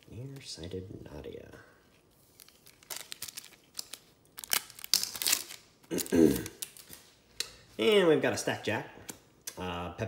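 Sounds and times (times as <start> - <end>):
card pack wrapper crinkling: 2.0 - 7.1.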